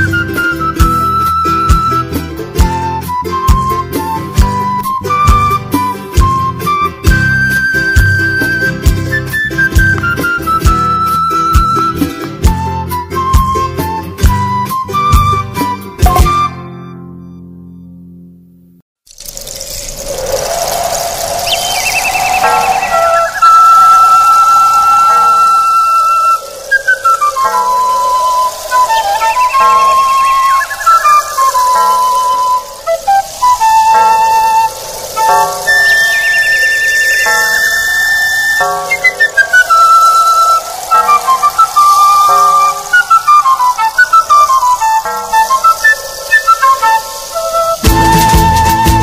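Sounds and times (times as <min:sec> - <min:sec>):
flute melody: 0:00.0 - 0:17.4, 0:20.2 - 0:49.0
rising wash of sound: 0:19.3 - 0:47.8.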